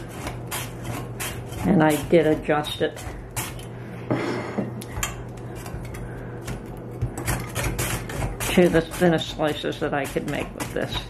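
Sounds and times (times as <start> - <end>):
cabbage scraping on slicer blade: 0.0 - 3.6, 6.5 - 11.0.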